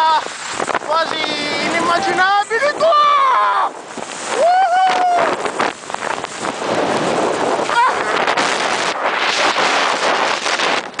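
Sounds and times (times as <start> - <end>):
wind rushing over microphone: 0.0 - 11.0
person shouting: 1.8 - 3.8, 4.4 - 5.4, 7.7 - 8.2
skis scraping over snow: 3.8 - 11.0.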